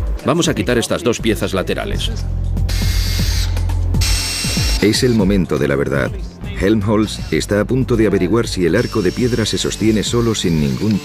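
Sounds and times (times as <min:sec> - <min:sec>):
cordless drill whining: 0:02.7 - 0:05.3, 0:08.6 - 0:11.0.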